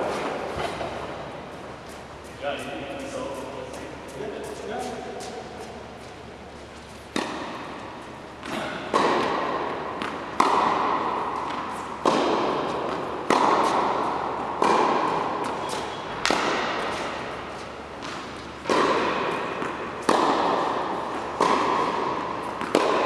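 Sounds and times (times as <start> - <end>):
tennis ball hit by rackets: 7.1 - 23.0.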